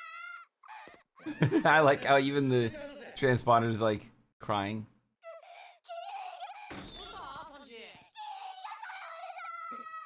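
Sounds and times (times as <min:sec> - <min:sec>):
high-pitched tearful voice wailing: 0:00.0 - 0:01.0, 0:05.3 - 0:07.5, 0:08.1 - 0:10.0.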